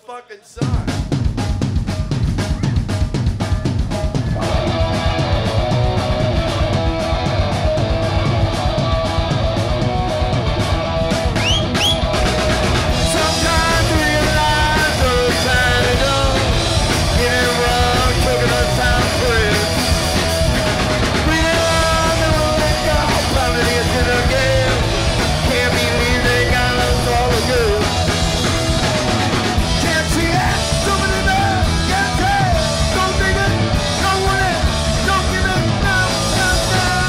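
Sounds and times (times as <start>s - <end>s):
drum kit beat: 0.0s - 37.0s
rock band playing: 0.0s - 37.0s.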